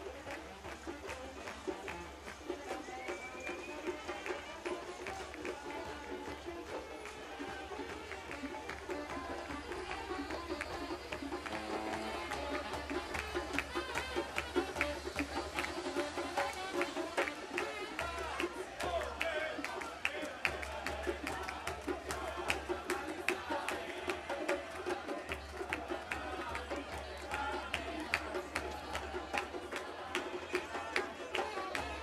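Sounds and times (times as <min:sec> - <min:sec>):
crowd voices: 0:00.0 - 0:32.0
people singing: 0:00.0 - 0:32.0.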